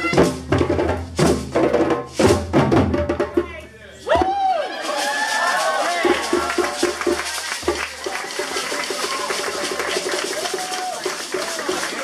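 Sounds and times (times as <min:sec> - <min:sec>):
djembe hand drumming: 0:00.0 - 0:03.5, 0:06.0 - 0:08.0
shaker: 0:04.3 - 0:12.0.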